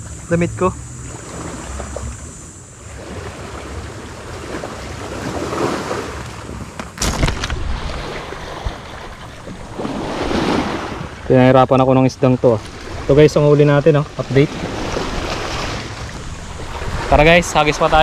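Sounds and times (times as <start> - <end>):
small waves washing on shore: 0.0 - 11.4, 12.2 - 18.0
wind buffeting microphone: 12.6 - 18.0.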